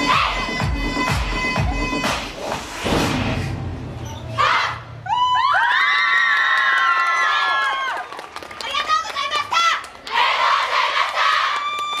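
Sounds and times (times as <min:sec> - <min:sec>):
audience cheering: 0:05.1 - 0:08.3
clapping: 0:06.1 - 0:10.2, 0:11.0 - 0:12.0.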